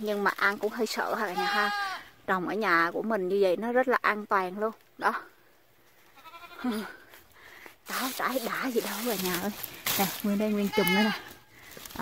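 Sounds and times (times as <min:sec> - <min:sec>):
goat bleating: 0:01.1 - 0:02.1, 0:06.1 - 0:07.0, 0:10.5 - 0:11.4.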